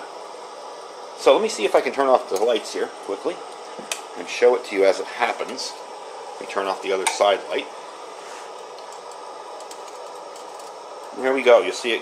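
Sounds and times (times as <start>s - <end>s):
camp stove burner hissing: 0.0s - 12.0s.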